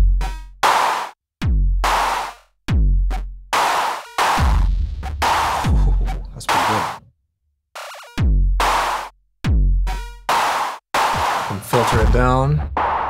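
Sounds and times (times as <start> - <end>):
electronic kick drum: 0.0 - 0.8, 1.4 - 6.9, 8.2 - 13.0
noisy snare-like hits: 0.6 - 1.2, 1.9 - 2.4, 3.6 - 4.5, 5.2 - 7.0, 10.3 - 13.0.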